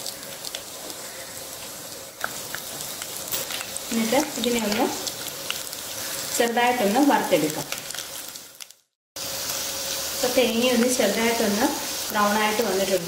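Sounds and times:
food sizzling in hot oil: 0.0 - 13.0.

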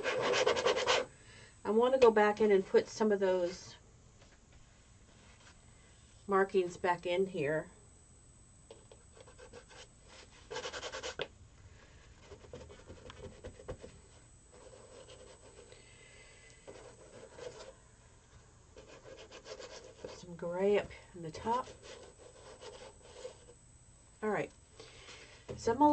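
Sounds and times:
rubbing on canvas surface: 0.0 - 1.1, 9.2 - 11.2, 18.8 - 20.2, 21.6 - 23.5
tool scraping painted canvas: 0.0 - 1.1, 9.1 - 11.3, 12.2 - 13.9, 21.5 - 23.5.

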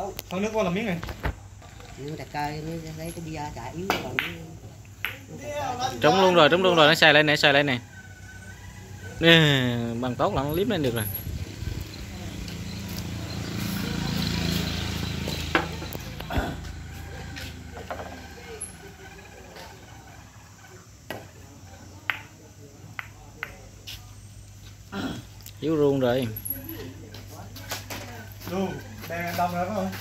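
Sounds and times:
billiard balls clicking: 3.1 - 5.4, 22.0 - 23.7.

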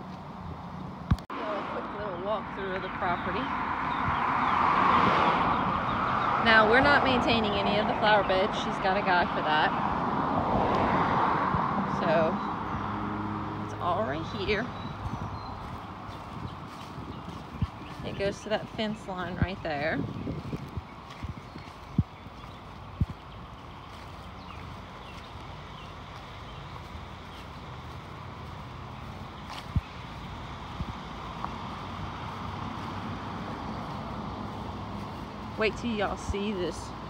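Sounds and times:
wind on microphone: 2.0 - 13.0, 13.6 - 25.9, 26.5 - 37.0
footsteps on grass and leaves: 14.2 - 37.0.

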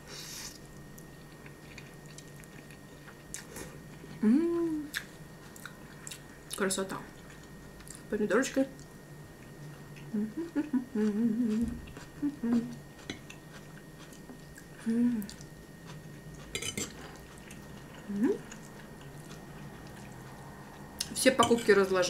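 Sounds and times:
person chewing: 0.6 - 4.2, 4.9 - 6.6, 7.2 - 8.1, 8.8 - 21.1
person humming with enjoyment: 4.2 - 4.9, 10.1 - 12.8, 14.8 - 15.4
fork clattering on plate: 16.6 - 17.0.

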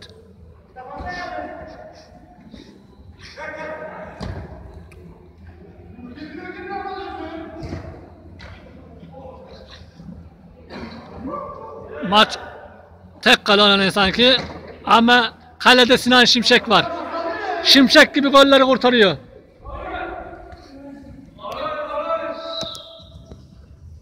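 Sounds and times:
distant shouts echoing: 0.8 - 2.2, 11.1 - 23.2.

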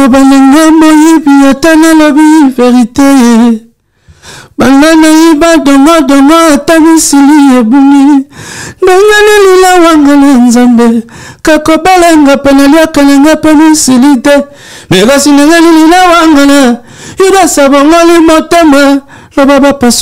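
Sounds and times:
man singing unaccompanied: 0.0 - 3.8, 4.4 - 20.0.

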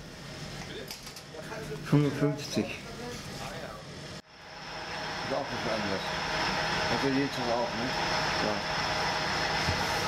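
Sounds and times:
machinery hum with high whine: 0.0 - 10.0.

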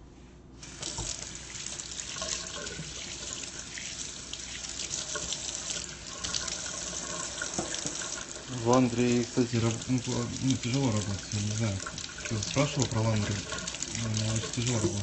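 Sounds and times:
tap water running into sink: 0.6 - 15.0.

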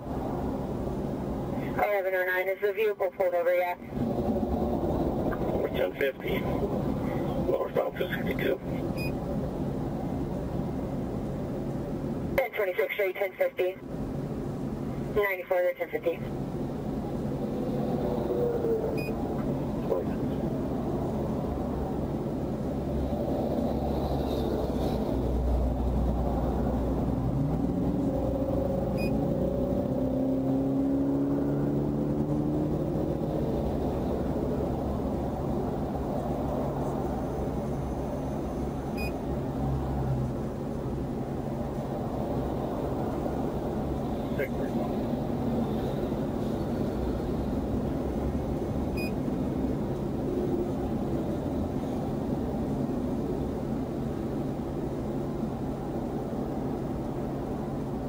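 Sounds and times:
highway traffic rumble: 0.0 - 58.0
low engine hum: 0.0 - 58.0
passing vehicle engine rising: 16.4 - 53.6.

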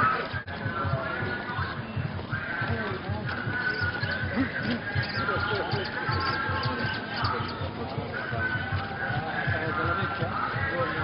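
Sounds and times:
crowd singing and calling: 0.0 - 11.0
drum beaten in quick rhythm: 0.0 - 11.0.

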